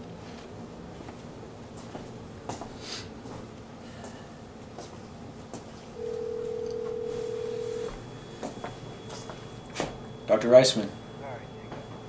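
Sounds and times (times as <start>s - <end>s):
telephone ringback tone: 6.0s - 12.0s.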